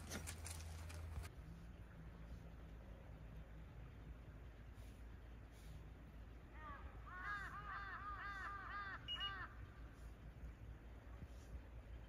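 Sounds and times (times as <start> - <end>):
bird calling rapid notes: 7.1 - 9.6.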